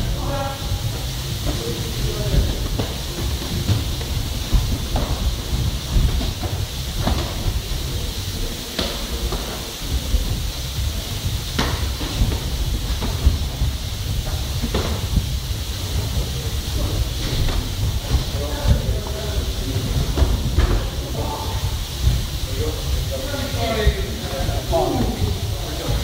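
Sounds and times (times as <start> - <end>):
low rumble and hiss: 0.0 - 26.0.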